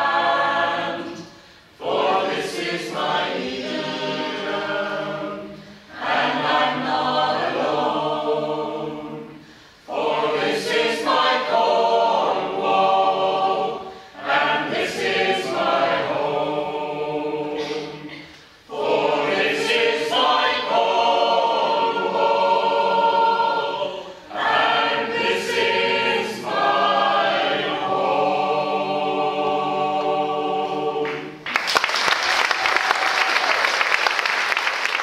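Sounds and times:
mixed choir singing in harmony: 0:00.0 - 0:31.5.

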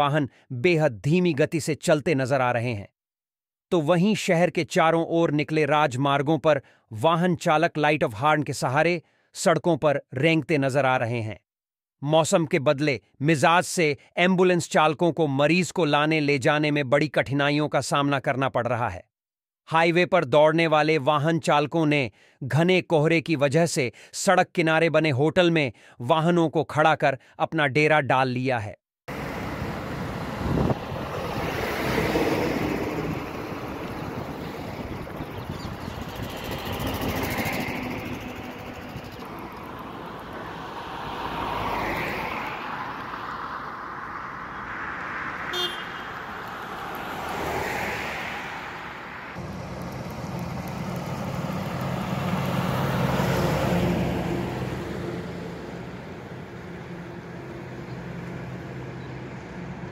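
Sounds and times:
low engine drone: 0:29.1 - 0:40.8, 0:49.1 - 0:59.9
highway traffic passing: 0:29.1 - 0:59.9.

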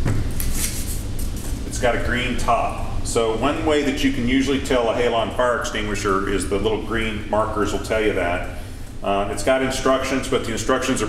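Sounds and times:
steady low hum: 0:00.0 - 0:11.0
man speaking: 0:01.6 - 0:11.0.

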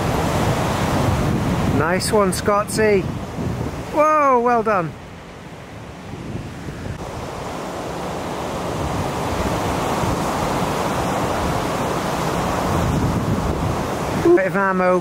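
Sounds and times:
storm surf roaring: 0:00.0 - 0:15.0
wind rumbling on microphone: 0:00.0 - 0:15.0.

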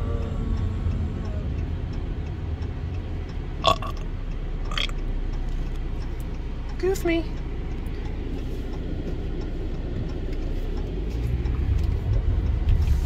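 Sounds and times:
car cabin road and engine rumble: 0:00.0 - 0:13.0.

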